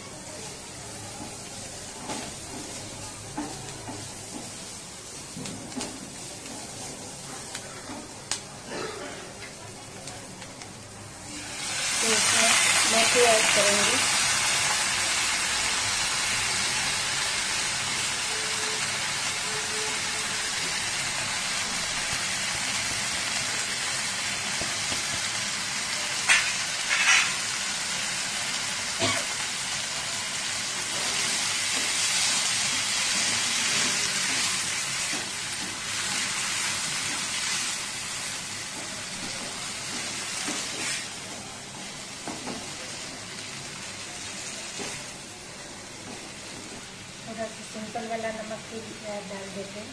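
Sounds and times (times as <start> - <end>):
chillies sizzling in hot oil: 0.0 - 49.9.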